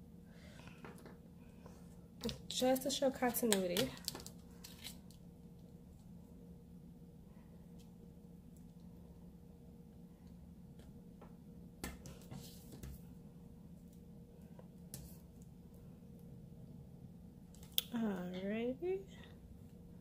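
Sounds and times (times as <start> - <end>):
steady low hum: 0.0 - 20.0
paper rustle: 4.0 - 5.0.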